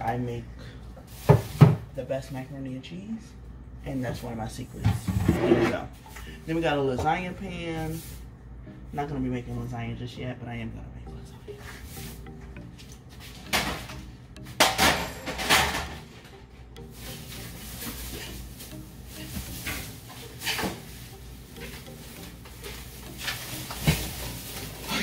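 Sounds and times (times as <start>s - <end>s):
background music: 2.2s - 25.0s
kitchenware clattering: 13.2s - 25.0s.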